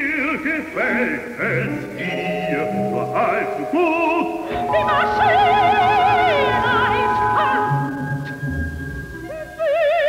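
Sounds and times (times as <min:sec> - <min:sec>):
sustained orchestral chords: 0:01.5 - 0:09.3.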